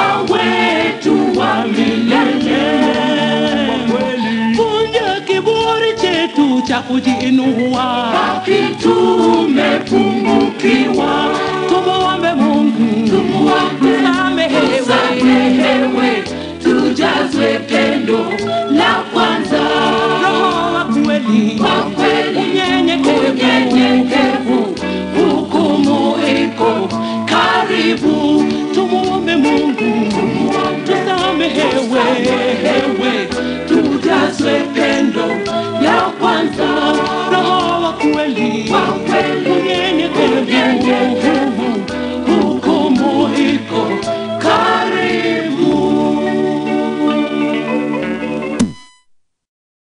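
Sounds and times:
voices singing gospel in harmony: 0.0 - 48.1
musical backing: 0.0 - 49.0.

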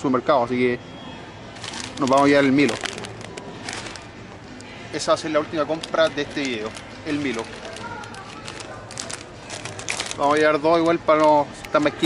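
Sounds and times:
plastic bags crinkling: 1.6 - 4.2, 5.5 - 12.0.

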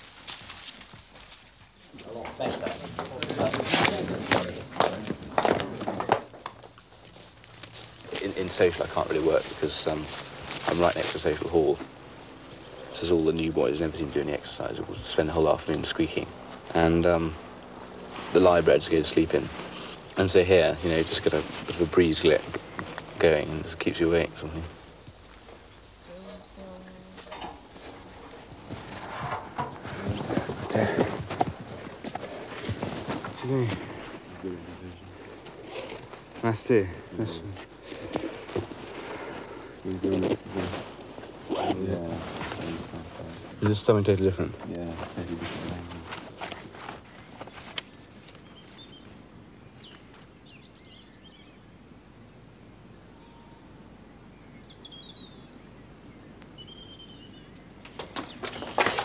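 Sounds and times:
footsteps of several people: 0.0 - 12.7, 27.6 - 36.5, 37.9 - 41.4
bird chirps: 47.0 - 51.8, 53.1 - 58.7.

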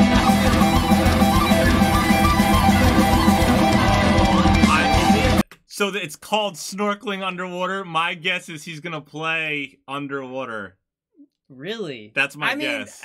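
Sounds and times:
electric guitar: 0.0 - 5.4
live metal band music: 0.0 - 5.4.

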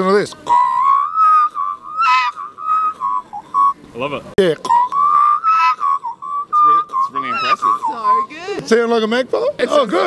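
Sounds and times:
man whistling bird call: 0.5 - 3.8, 4.7 - 8.3.

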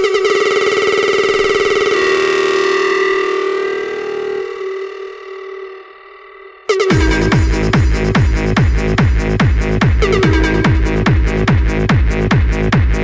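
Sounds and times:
rapidly pulsing synthesizer chord: 0.0 - 13.0.

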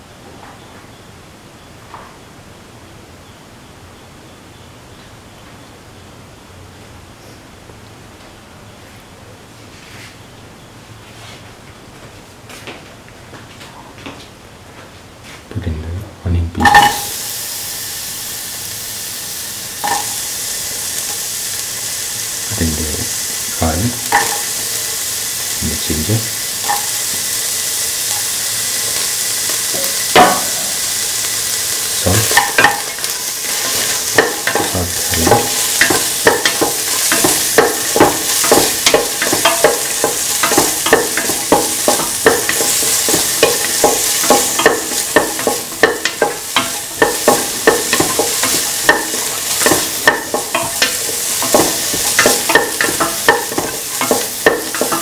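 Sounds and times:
utensil scraping and tapping a pan: 16.6 - 17.2, 19.8 - 20.2, 24.0 - 25.0, 26.6 - 27.2, 28.1 - 30.8, 31.9 - 55.0
onions sizzling in hot oil: 16.6 - 55.0.

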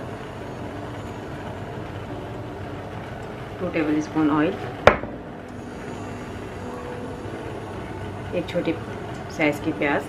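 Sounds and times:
kitchen background rumble and hiss: 0.0 - 10.0.

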